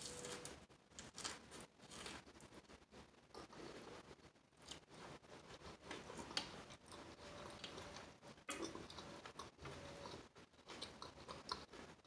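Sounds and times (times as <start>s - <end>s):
chewing crisp lettuce: 5.8s - 12.0s.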